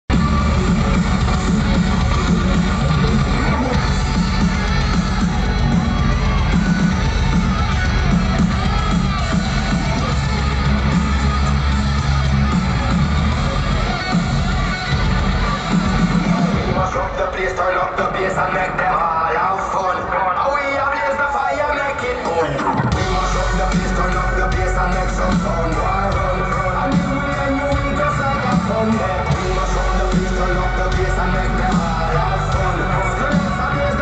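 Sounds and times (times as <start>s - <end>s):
crowd noise: 0.0s - 34.0s
loud live music with heavy bass: 0.1s - 34.0s.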